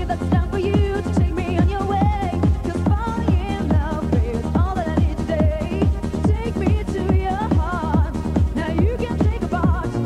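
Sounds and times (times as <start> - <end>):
fast electronic dance track: 0.0 - 10.0.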